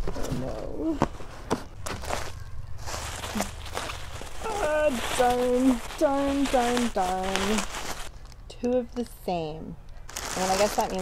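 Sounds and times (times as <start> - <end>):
cardboard and plastic rustling: 0.0 - 9.2, 10.0 - 11.0
woman speaking: 4.4 - 7.7, 8.5 - 9.8, 10.4 - 11.0.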